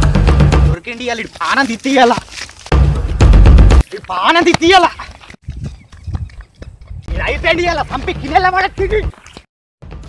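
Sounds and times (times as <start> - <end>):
barefoot footsteps running on dry ground: 0.2 - 10.0.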